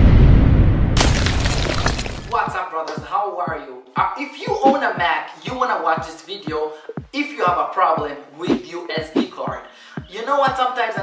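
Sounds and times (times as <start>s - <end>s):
glass shattering: 1.0s - 2.4s
person speaking: 2.2s - 11.0s.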